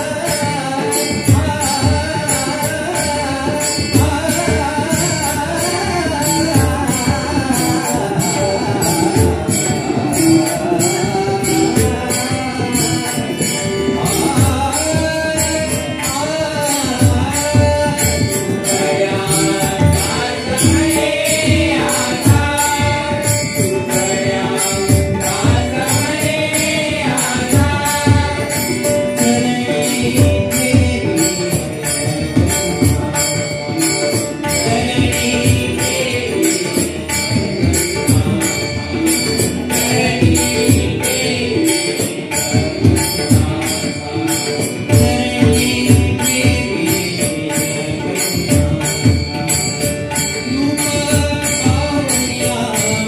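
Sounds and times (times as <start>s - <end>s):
harmonium: 0.0s - 53.0s
lead voice singing: 0.0s - 53.0s.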